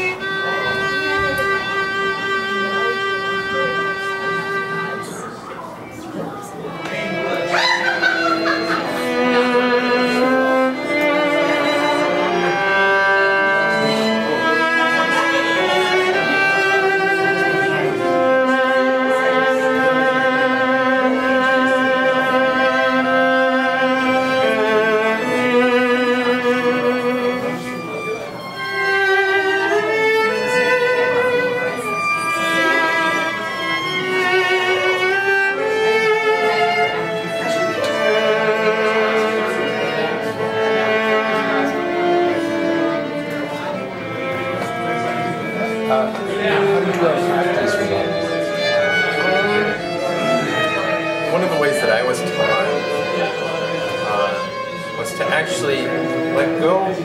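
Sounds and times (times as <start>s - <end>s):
bowed viola with vibrato: 0.0s - 57.0s.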